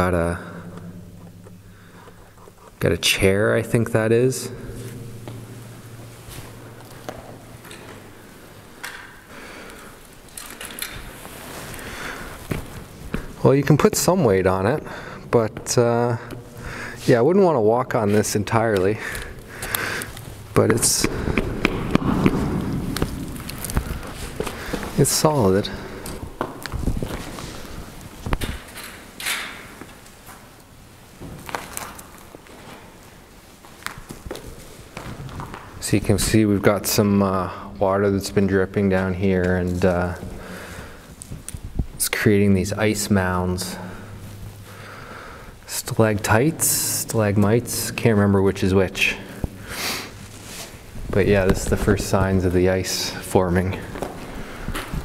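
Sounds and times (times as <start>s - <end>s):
footsteps on wooden ties: 4.8s - 14.2s, 18.1s - 35.9s.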